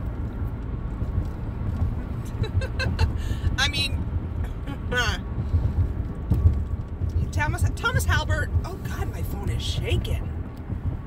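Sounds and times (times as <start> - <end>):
road and engine rumble: 0.0 - 11.0
person laughing: 2.2 - 3.4.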